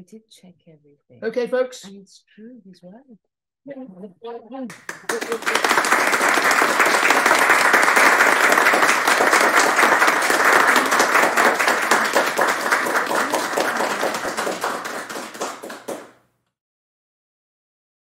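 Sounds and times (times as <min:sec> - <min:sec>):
audience applauding: 0:04.7 - 0:16.2.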